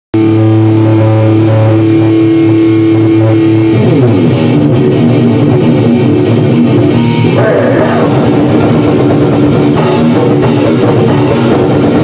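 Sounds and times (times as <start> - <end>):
electric guitar chord and notes: 0.2 - 12.0.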